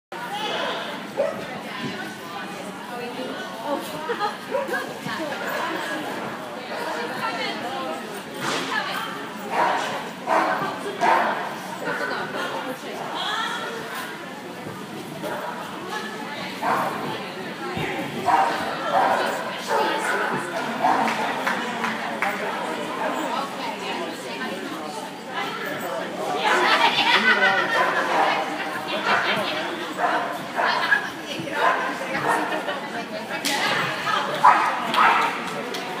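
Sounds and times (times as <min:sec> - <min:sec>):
echoing chatter of people: 0:00.1 - 0:36.0
dog barking: 0:34.4 - 0:35.3.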